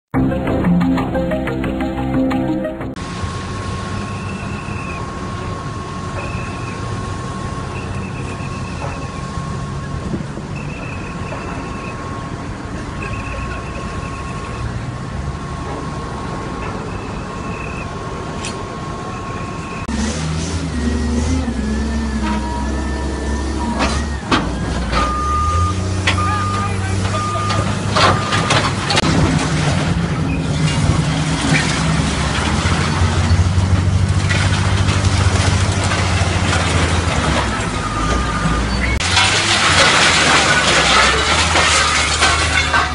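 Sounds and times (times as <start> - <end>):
vehicle engines rumbling: 0.1 - 42.9
bucket pushing wreckage: 21.1 - 42.9.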